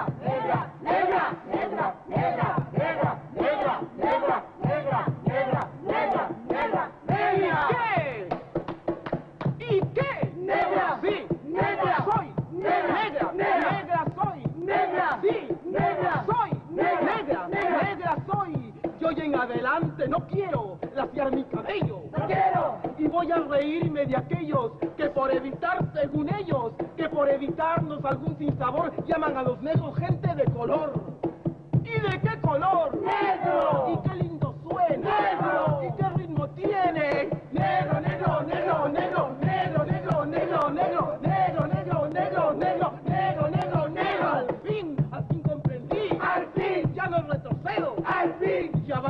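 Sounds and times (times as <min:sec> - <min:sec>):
group of voices chanting: 0:00.0 - 0:08.2, 0:10.1 - 0:14.0, 0:14.6 - 0:18.1, 0:22.1 - 0:22.9, 0:32.9 - 0:34.1, 0:34.8 - 0:36.0, 0:36.9 - 0:44.6, 0:45.9 - 0:46.9, 0:47.7 - 0:48.8
clapped beat: 0:00.0 - 0:48.8.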